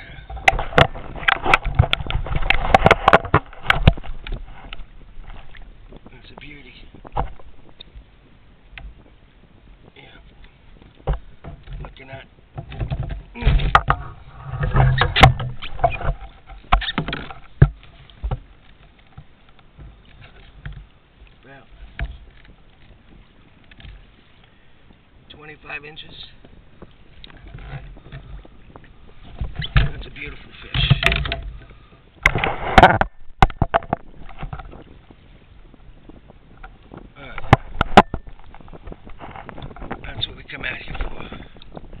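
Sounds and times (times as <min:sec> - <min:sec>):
water lapping at hull: 0:00.0 - 0:42.0
microphone handling knocks: 0:00.1 - 0:08.0, 0:10.3 - 0:20.9, 0:21.8 - 0:24.0, 0:26.4 - 0:42.0
man talking: 0:25.3 - 0:26.4, 0:29.8 - 0:31.2, 0:40.0 - 0:41.3
knocks on a boat: 0:30.7 - 0:31.6.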